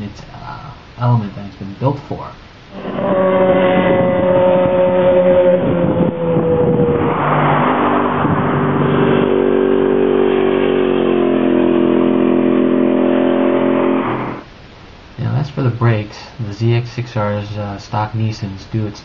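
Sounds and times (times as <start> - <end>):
motorcycle engines passing: 2.7 - 14.5.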